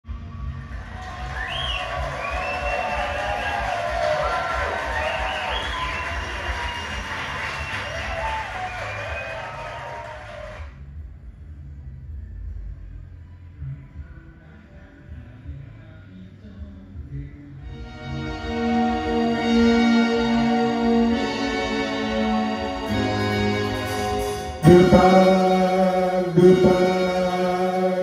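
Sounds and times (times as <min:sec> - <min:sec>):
karaoke machine music jingle: 0:17.6 - 0:28.0.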